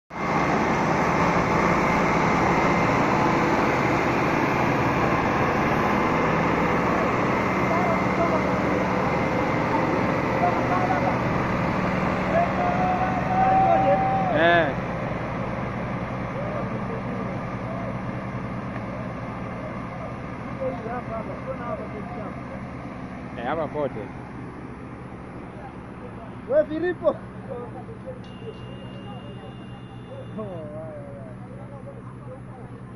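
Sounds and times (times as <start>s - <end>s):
tractor diesel engines droning: 0.1s - 32.9s
voices shouting: 9.5s - 14.8s.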